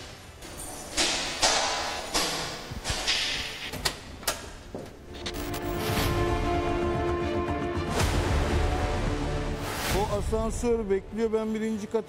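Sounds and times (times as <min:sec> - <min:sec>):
music: 0:05.0 - 0:12.0.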